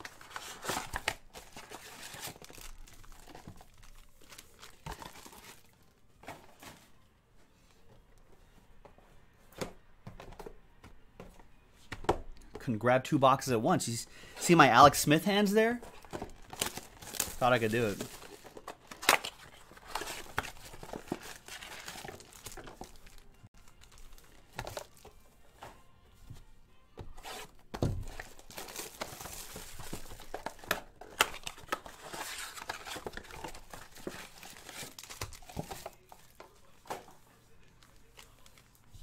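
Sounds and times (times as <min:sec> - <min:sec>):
plastic wrap crinkling and tearing: 0:00.0 - 0:05.8, 0:15.4 - 0:25.1, 0:28.0 - 0:36.6
cardboard rustling and clicks: 0:15.8 - 0:23.2, 0:27.2 - 0:37.2.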